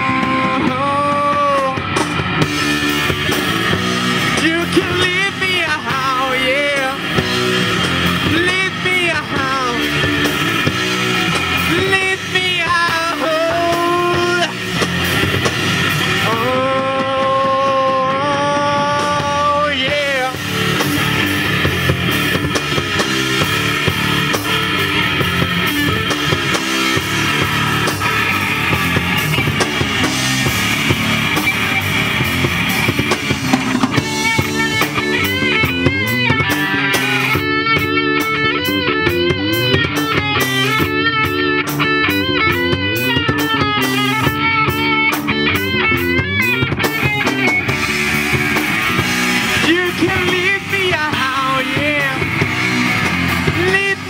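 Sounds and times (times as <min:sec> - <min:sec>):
lead guitar bent notes: 0:00.0 - 0:54.0
rock band playing: 0:00.0 - 0:54.0.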